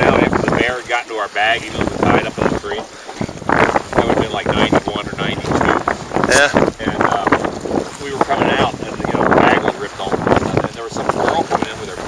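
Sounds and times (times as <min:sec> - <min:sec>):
people talking: 0:00.0 - 0:03.0, 0:03.9 - 0:07.4, 0:08.0 - 0:12.0
choppy water: 0:00.0 - 0:12.0
rowboat being rowed: 0:00.0 - 0:12.0
wind buffeting microphone: 0:00.0 - 0:12.0.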